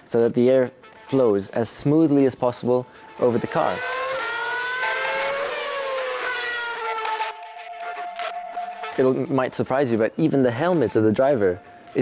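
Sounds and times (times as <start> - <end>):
racing car engine at high revs: 3.1 - 7.4.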